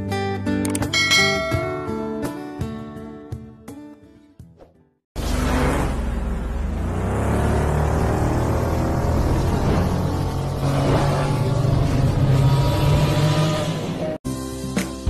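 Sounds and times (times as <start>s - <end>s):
futuristic vehicle engine roar: 5.2s - 14.2s.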